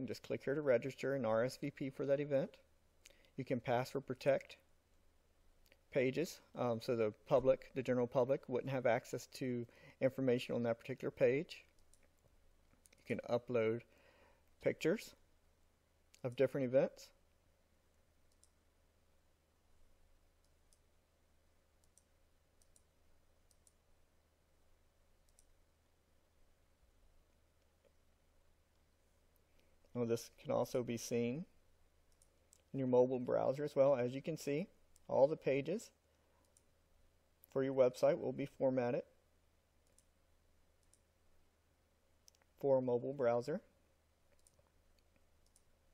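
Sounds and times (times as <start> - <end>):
low steady hum: 0.0 - 45.9
computer mouse clicks: 11.7 - 13.0, 18.3 - 18.6, 20.4 - 20.9, 21.8 - 23.8, 25.2 - 25.6, 32.1 - 32.7, 39.8 - 40.1, 40.8 - 41.1, 44.3 - 45.7
faint computer mouse clicks: 21.8 - 22.9, 23.5 - 23.8, 44.3 - 45.7.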